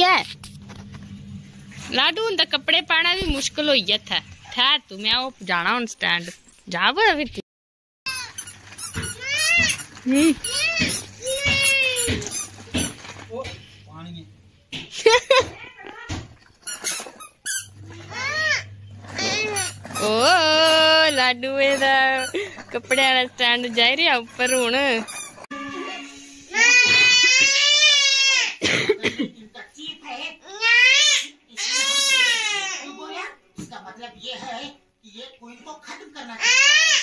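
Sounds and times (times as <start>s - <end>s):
woman speaking: 1.8s - 7.4s, 10.0s - 10.5s, 19.9s - 25.1s
baby squealing: 8.1s - 12.9s, 16.7s - 22.4s, 24.5s - 28.6s, 36.4s - 37.0s
toddler crying: 9.0s - 12.4s, 17.9s - 19.8s, 25.5s - 28.6s, 30.4s - 33.1s, 36.4s - 37.0s
toddler whimpering: 9.1s - 12.2s, 17.9s - 19.8s.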